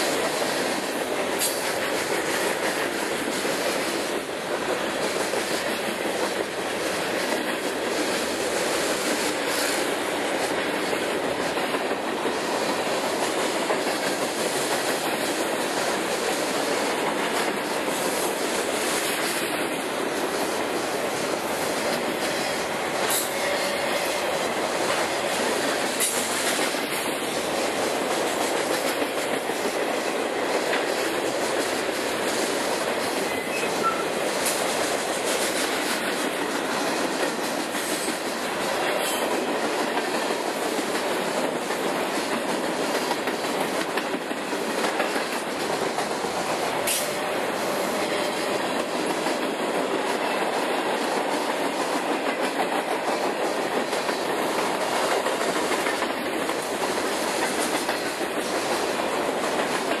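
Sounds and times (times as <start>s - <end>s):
faint rail clicks: 0.0s - 47.4s, 51.2s - 60.0s
freight train wheels on rail: 0.0s - 60.0s.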